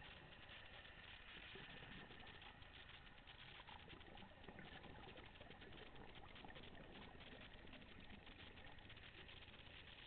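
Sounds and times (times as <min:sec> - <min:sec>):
underwater crackle of tiny clicks: 0:00.0 - 0:10.0.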